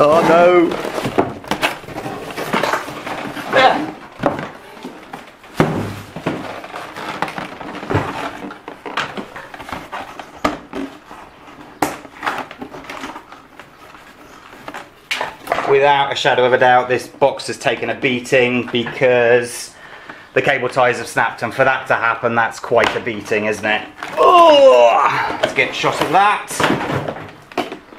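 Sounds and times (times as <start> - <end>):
packaging rustling in cardboard box: 0.0 - 15.1.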